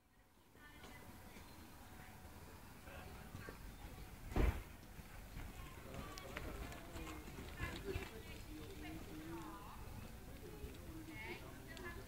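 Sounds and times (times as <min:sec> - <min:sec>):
loud thump: 0:04.3 - 0:04.7.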